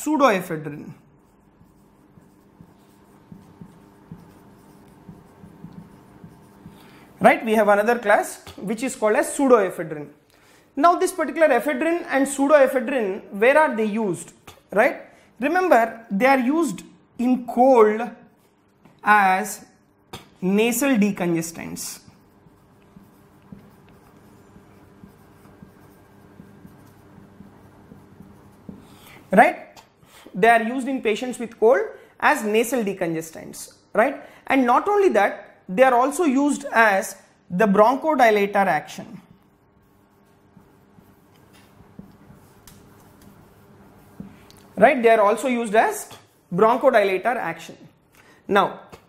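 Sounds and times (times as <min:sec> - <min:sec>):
marker writing on whiteboard: 0:00.8 - 0:09.4, 0:18.2 - 0:31.6, 0:37.8 - 0:47.8.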